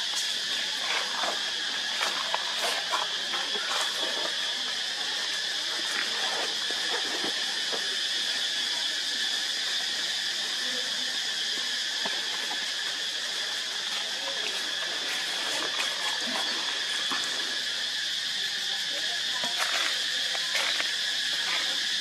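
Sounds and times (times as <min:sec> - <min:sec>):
insect chorus buzzing: 0:00.0 - 0:22.0
dry leaves rustling: 0:19.4 - 0:22.0.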